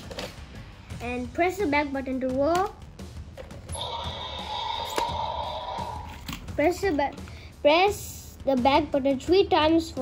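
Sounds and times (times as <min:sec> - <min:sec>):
toy whirring: 0:03.8 - 0:06.4.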